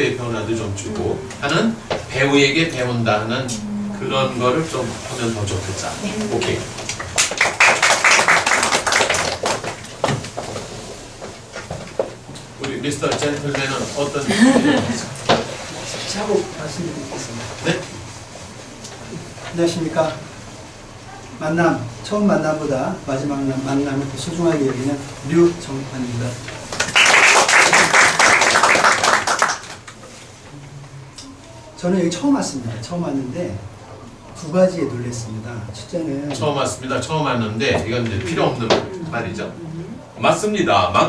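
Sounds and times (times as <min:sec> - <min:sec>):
audience clapping: 0:06.4 - 0:10.3, 0:26.7 - 0:30.0.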